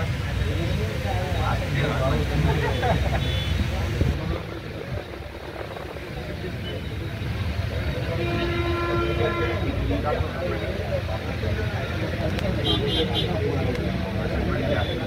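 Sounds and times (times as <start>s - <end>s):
voices chattering: 0.0s - 15.0s
vehicle horn blast: 3.2s - 3.6s, 8.1s - 9.7s.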